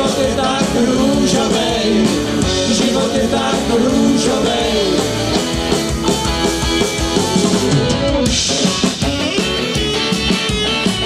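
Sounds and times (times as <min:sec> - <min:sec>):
accordion: 0:00.0 - 0:11.0
bass guitar: 0:00.0 - 0:11.0
drum kit: 0:00.0 - 0:11.0
electric guitars: 0:00.0 - 0:11.0.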